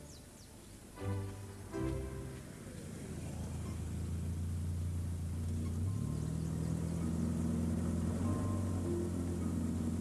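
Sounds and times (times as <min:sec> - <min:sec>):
car engine running: 0:01.3 - 0:10.0.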